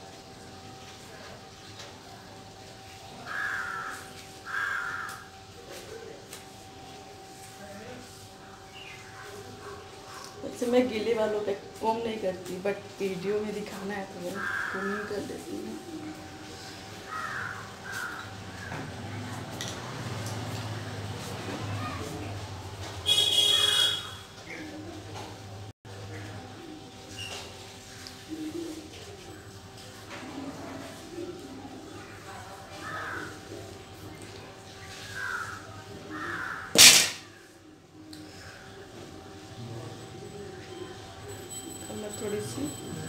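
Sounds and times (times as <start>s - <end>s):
crows cawing: 3.2s - 5.4s, 14.2s - 15.4s, 16.6s - 18.9s, 32.8s - 33.4s, 34.9s - 37.4s
bird calling: 14.3s - 15.3s.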